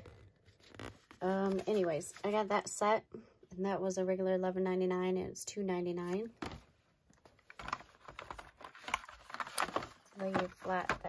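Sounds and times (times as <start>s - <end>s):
plastic packs clicking and crinkling: 7.2s - 11.0s.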